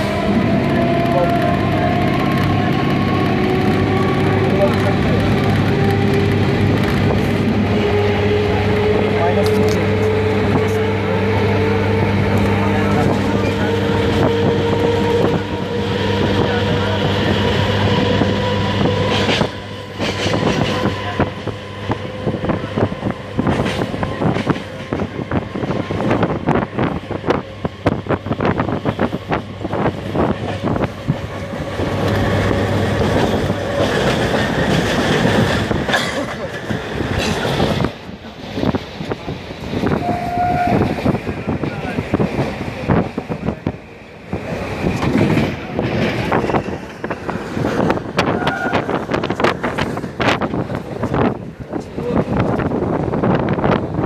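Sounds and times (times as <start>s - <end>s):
train hum and rising whine: 0.0s - 54.0s.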